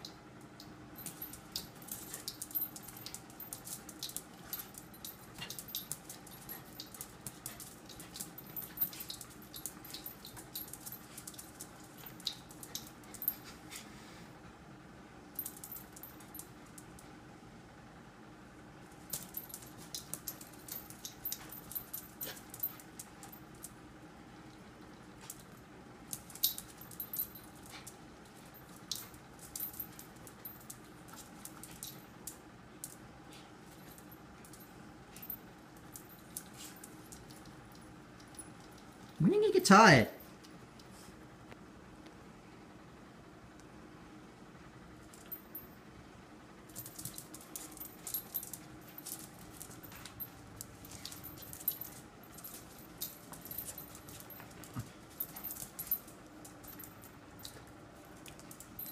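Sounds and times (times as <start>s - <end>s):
metal collar tags jingling: 0.0s - 13.5s, 15.4s - 16.5s, 19.0s - 23.7s, 25.2s - 33.0s, 33.6s - 39.2s, 46.7s - 58.9s.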